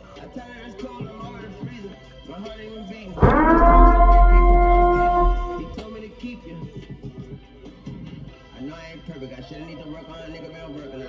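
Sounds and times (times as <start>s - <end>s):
deep sub-bass boom: 3.2s - 5.8s
held synth note: 3.2s - 5.9s.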